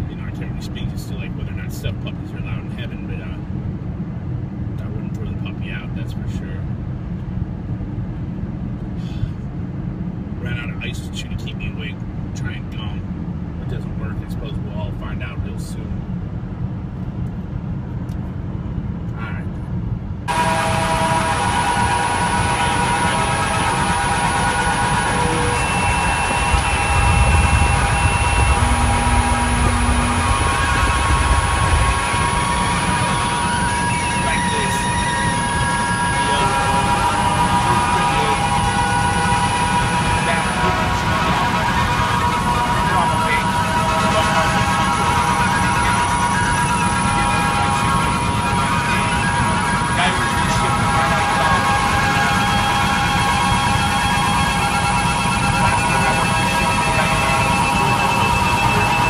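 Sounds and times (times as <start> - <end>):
road and wind noise inside car: 0.0 - 20.4
low rumble: 0.0 - 59.0.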